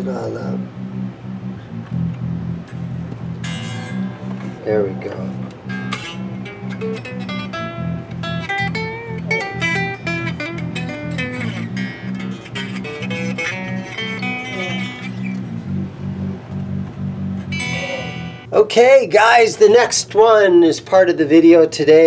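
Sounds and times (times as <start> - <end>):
unplugged electric guitar fingerpicked: 0.0 - 18.5.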